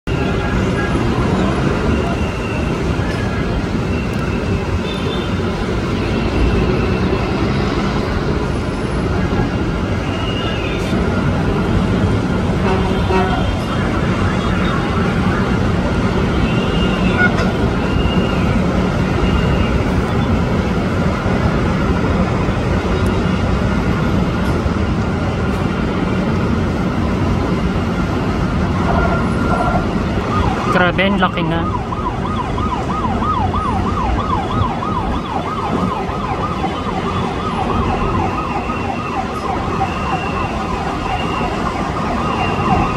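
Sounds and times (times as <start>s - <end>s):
city traffic rumble: 0.0s - 42.9s.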